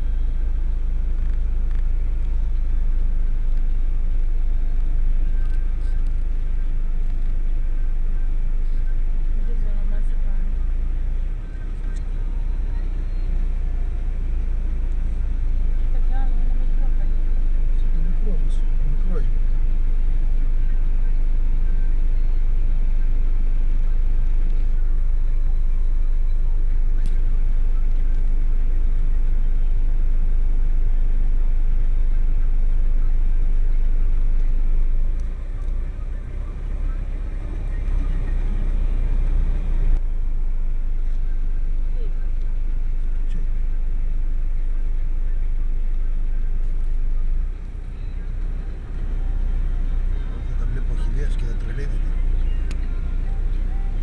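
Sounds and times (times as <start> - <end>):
vehicle engine low rumble: 0.0 - 54.0.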